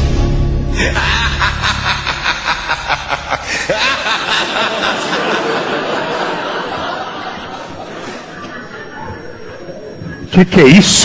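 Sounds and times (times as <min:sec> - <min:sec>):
person laughing rapidly: 0:00.8 - 0:08.9.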